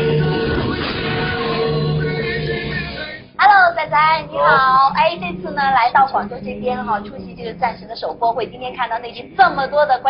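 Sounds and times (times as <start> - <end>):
intro music: 0.0 - 9.9
woman's high-pitched voice: 3.4 - 10.0.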